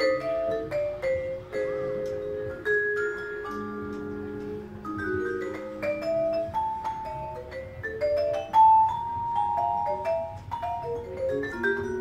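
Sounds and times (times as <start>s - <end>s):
vibraphone played with mallets: 0.0s - 12.0s.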